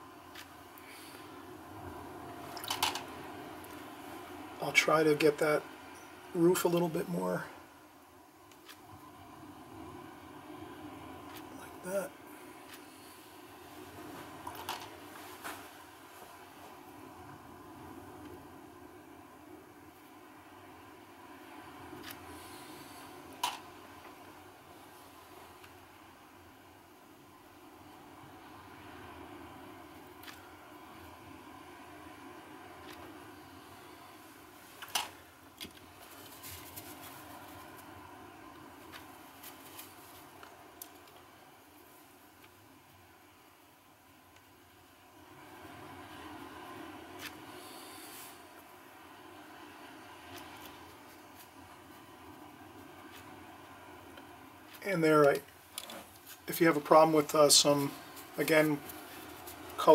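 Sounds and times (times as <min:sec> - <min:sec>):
faint steady hum: 0:00.0 - 0:59.9.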